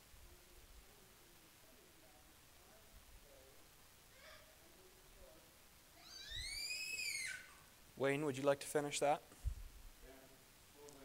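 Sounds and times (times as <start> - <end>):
baby squealing: 6.0 - 7.6.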